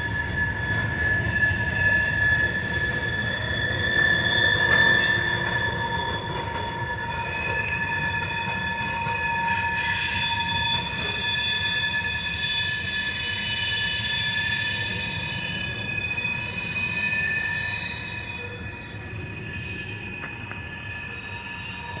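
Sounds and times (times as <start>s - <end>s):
low rumble of train: 0.0s - 22.0s
train wheels squealing: 0.0s - 22.0s.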